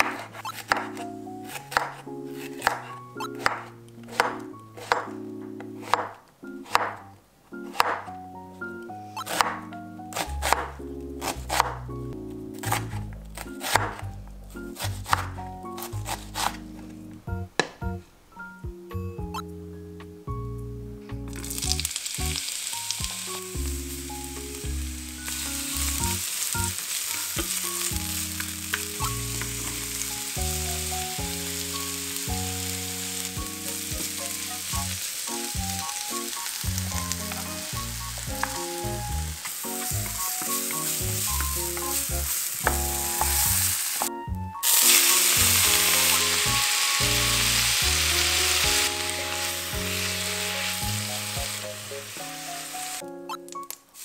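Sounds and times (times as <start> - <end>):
background music with bass line: 7.8 - 22.4, 23.0 - 53.0
oil sizzling in a frying pan: 21.3 - 53.0.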